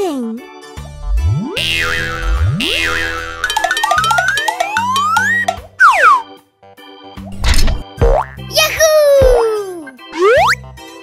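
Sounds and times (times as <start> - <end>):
light children's music: 0.0 - 11.0
springy boing: 8.0 - 8.4.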